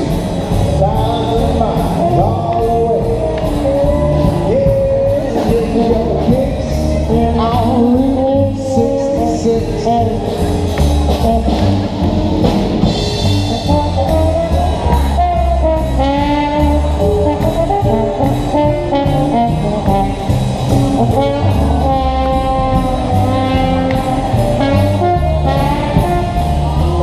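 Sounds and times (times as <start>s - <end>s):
swing big band playing: 0.0s - 27.0s.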